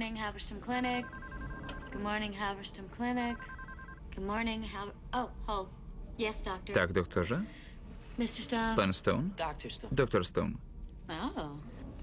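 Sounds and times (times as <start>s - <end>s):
woman speaking: 0.0s - 1.1s, 1.9s - 3.5s, 11.1s - 11.7s
electronic telephone ringing: 0.8s - 2.3s, 3.1s - 4.0s.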